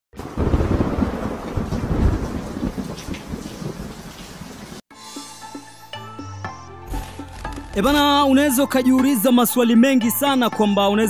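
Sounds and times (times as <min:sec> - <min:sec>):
steady rain: 0:00.2 - 0:04.8
thunder rumbling: 0:00.2 - 0:04.8.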